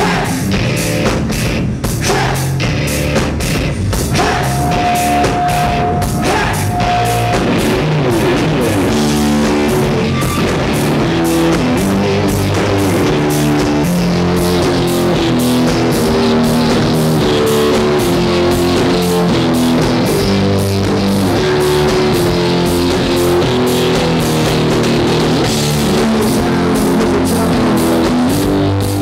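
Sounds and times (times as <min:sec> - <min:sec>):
rock band playing loudly: 0:00.0 - 0:29.0.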